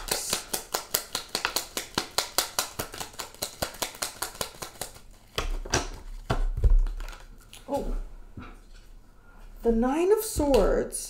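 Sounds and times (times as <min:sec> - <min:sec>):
cards rustling: 0:00.0 - 0:07.7
cards being shuffled: 0:00.0 - 0:07.8.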